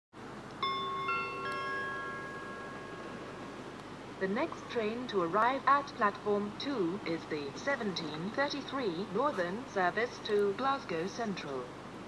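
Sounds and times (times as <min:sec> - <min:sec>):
three-note loudspeaker chime: 0:00.6 - 0:03.6.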